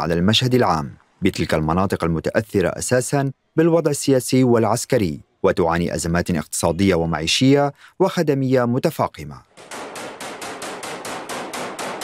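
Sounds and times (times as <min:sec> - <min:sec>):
automatic rifle fire: 0:09.6 - 0:12.0.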